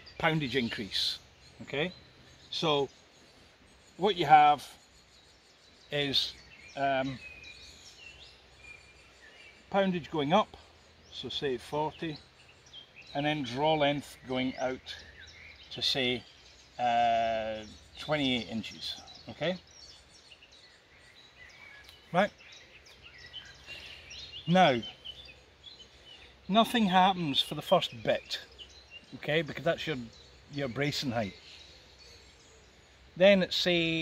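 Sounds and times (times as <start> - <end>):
faint birdsong: 0.0 - 34.0
outdoor background hiss: 0.0 - 34.0.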